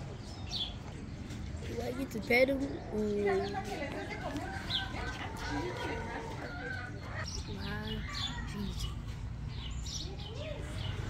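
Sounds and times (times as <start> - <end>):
indistinct people's voices: 0.0 - 11.0
chickens clucking: 2.6 - 9.4.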